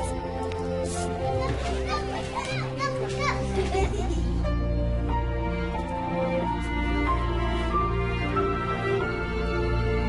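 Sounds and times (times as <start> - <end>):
background music: 0.0 - 10.0
children calling out and playing: 1.1 - 3.8.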